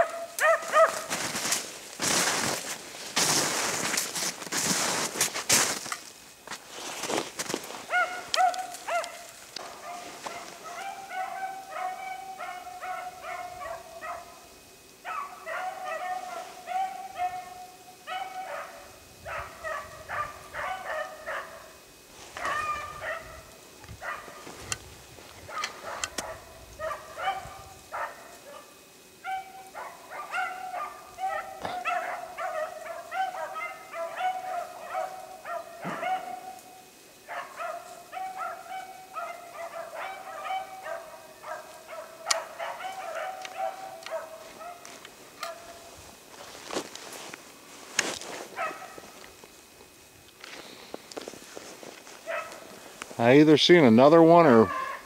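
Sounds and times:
hounds baying: 0.0 - 3.7, 7.0 - 24.8, 25.4 - 47.3, 48.3 - 49.3, 51.2 - 53.1, 54.2 - 55.0.

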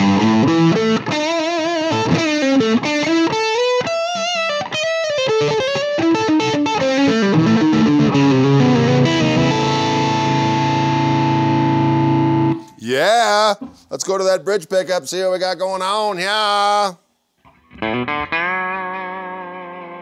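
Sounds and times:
electric guitar through an amp: 0.0 - 12.8, 17.4 - 20.0.

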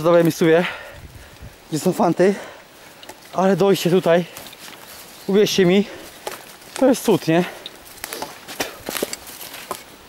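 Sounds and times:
footsteps through undergrowth: 0.0 - 10.0
twigs and leaves crackling: 0.0 - 10.0.

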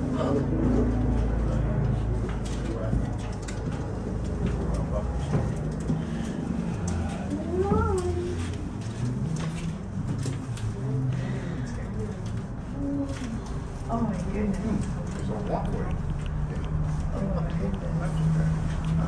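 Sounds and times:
passengers talking: 0.0 - 19.0
cable car cabin rumble: 1.6 - 15.6.

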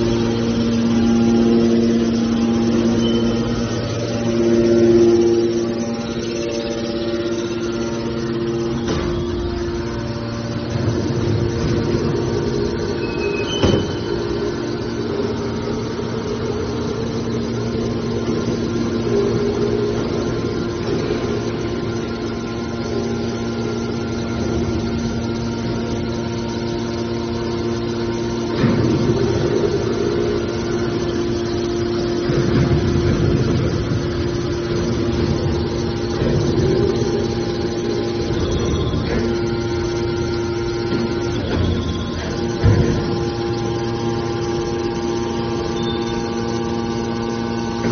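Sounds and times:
hydraulic pump motor humming: 0.0 - 47.9.

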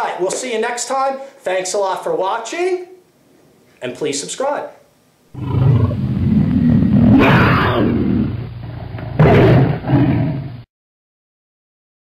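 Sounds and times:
big cat growling and roaring: 5.4 - 10.6.

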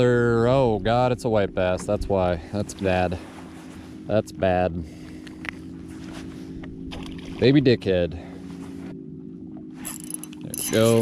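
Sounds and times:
electric trolling motor humming: 0.0 - 11.0
spinning reel clicking: 9.8 - 11.0.

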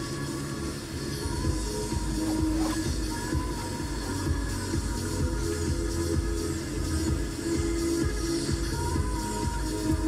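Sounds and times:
low car cabin rumble: 0.0 - 10.0
music on car radio: 0.0 - 10.0.

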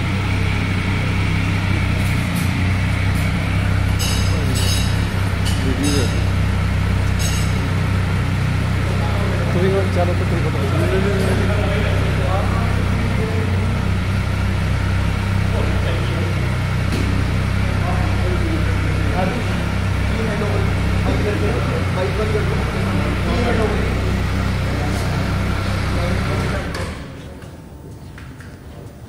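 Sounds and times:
people talking: 0.0 - 7.2, 8.6 - 27.7
motorcycle engine idling: 0.0 - 27.2.

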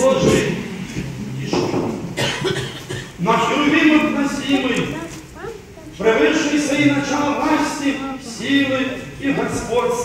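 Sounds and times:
person coughing: 2.2 - 3.2.

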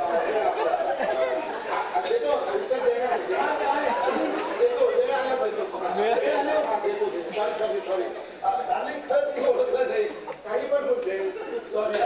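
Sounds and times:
actors speaking in echoing hall: 0.0 - 12.0.

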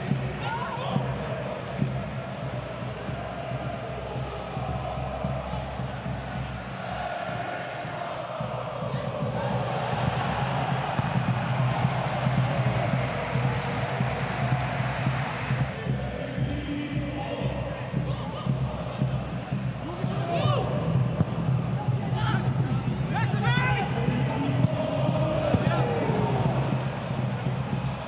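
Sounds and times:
crowd chanting and singing: 0.0 - 28.0.

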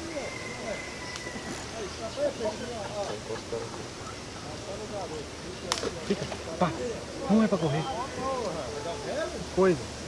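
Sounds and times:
low voices talking: 0.0 - 10.0.

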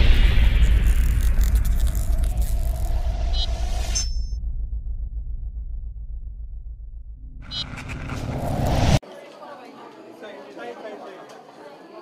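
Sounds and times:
deep steady rumble: 0.0 - 9.0.

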